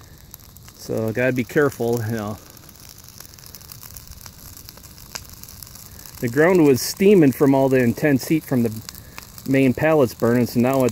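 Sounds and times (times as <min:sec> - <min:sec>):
fire hissing and crackling: 0:00.0 - 0:10.9
sharp pops of burning wood: 0:00.0 - 0:10.9.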